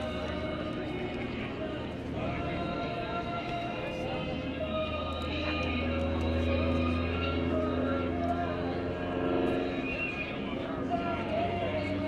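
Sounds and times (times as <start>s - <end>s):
airplane engine drone: 0.0s - 12.0s
music with singing over loudspeakers: 0.0s - 12.0s.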